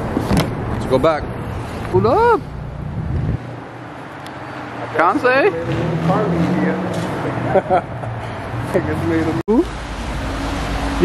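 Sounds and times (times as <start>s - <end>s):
car engine accelerating: 4.8s - 11.0s.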